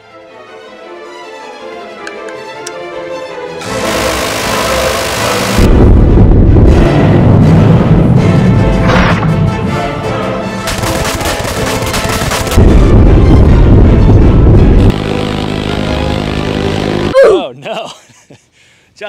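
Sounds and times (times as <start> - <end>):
dramatic music: 0.0 - 17.2
minigun firing continuous burst: 3.6 - 6.8, 10.7 - 17.1.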